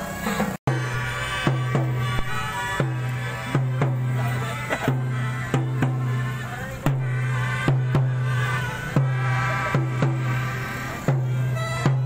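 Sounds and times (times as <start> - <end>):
drum beat: 0.1 - 12.0
melodicas playing a tune: 0.1 - 12.0.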